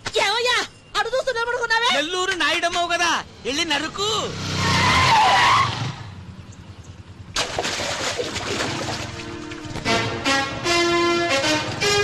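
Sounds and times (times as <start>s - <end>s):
tyre screech of skidding vehicle: 4.5s - 6.1s.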